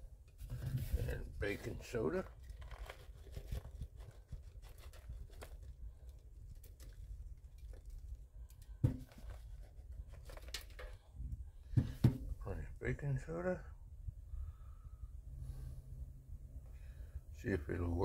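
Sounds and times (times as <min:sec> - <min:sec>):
rustling and crinkling: 0:00.3 - 0:12.3.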